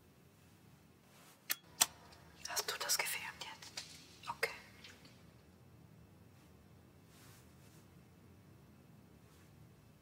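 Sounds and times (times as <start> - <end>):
soft breathy whispering: 2.4 - 4.9.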